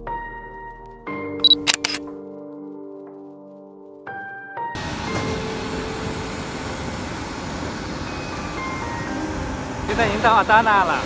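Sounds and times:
bus rumble from inside cabin: 0:04.8 - 0:11.0
high-pitched whine: 0:04.8 - 0:11.0.

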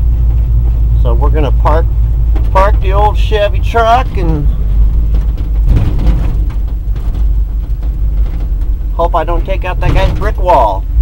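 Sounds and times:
truck engine rumbling: 0:00.0 - 0:11.0.

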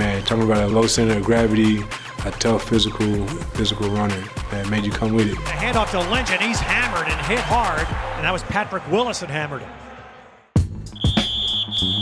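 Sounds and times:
background music: 0:00.0 - 0:12.0
high-pitched whistle blast: 0:10.9 - 0:12.0.

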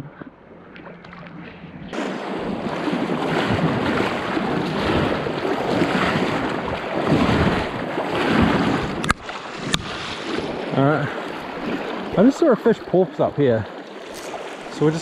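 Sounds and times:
wind buffeting microphone: 0:00.0 - 0:12.5
river water rushing and splashing: 0:01.9 - 0:15.0.

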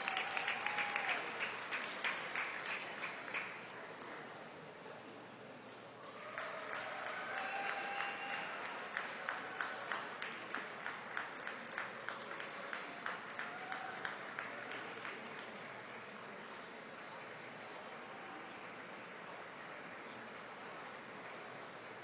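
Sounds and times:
spectators applauding: 0:00.0 - 0:04.2, 0:06.0 - 0:22.0.

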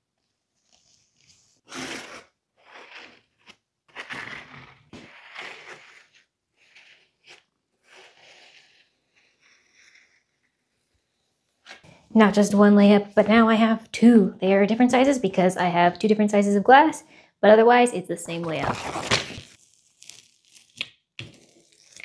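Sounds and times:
plastic spreader scraping: 0:03.9 - 0:09.9.

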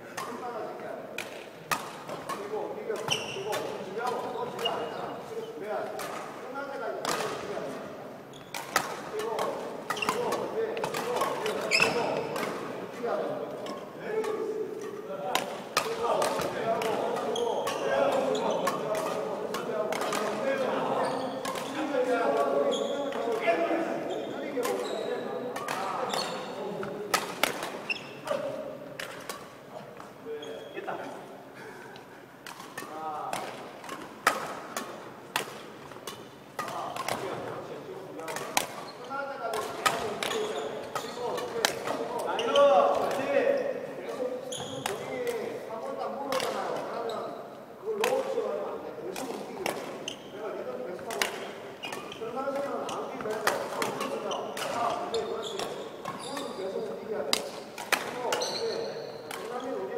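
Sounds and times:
rackets striking shuttlecocks: 0:01.1 - 0:05.2, 0:05.8 - 0:07.8, 0:08.4 - 0:30.2, 0:32.4 - 0:43.6, 0:48.0 - 0:48.4, 0:49.1 - 0:59.8.

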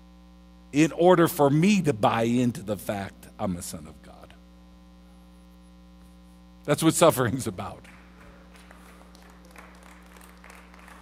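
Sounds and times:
electrical mains hum: 0:00.0 - 0:11.0
man speaking: 0:00.8 - 0:04.4, 0:06.6 - 0:07.9.

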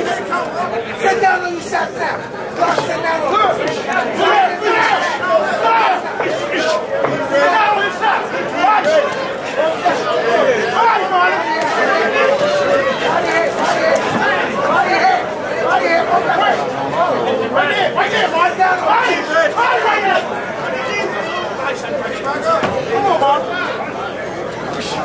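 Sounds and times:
crowd talking and shouting: 0:00.0 - 0:25.0.

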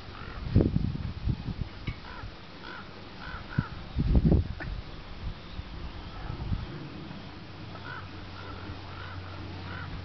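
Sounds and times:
bird calling: 0:01.9 - 0:10.0.

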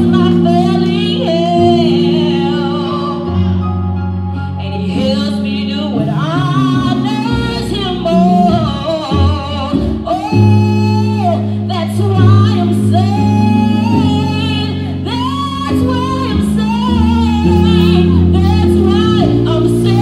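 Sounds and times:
sustained low instrumental chords: 0:00.0 - 0:20.0.

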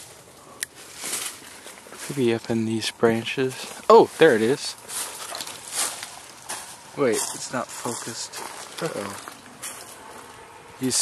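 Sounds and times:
leafy branches rustling: 0:00.0 - 0:11.0.

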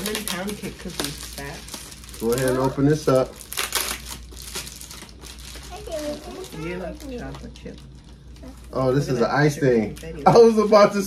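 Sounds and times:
plastic packaging crinkling: 0:00.0 - 0:09.0.

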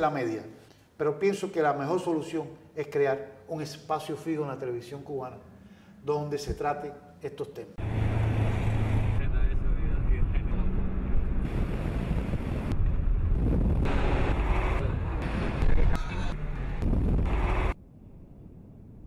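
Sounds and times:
road vehicle running: 0:07.8 - 0:17.8
wind buffeting microphone: 0:09.0 - 0:17.4.

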